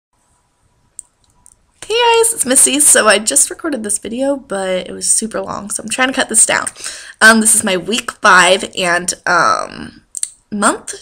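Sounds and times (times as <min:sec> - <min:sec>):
soft clicks: 0:01.0 - 0:01.6.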